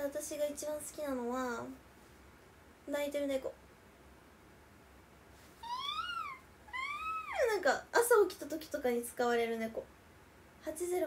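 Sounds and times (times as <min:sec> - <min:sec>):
woman imitating crying cat: 0:05.6 - 0:07.5.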